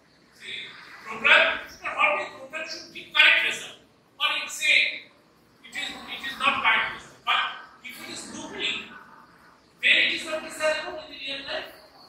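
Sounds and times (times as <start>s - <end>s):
man lecturing: 0.4s - 9.0s, 9.8s - 11.8s.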